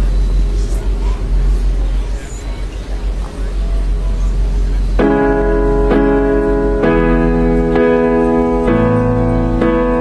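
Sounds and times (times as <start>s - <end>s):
dense rumbling bass hum: 0.0s - 10.0s.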